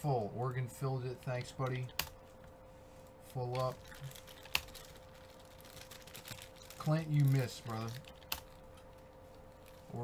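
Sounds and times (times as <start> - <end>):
faint hum: 0.0 - 10.0
keyboard typing: 5.8 - 8.6.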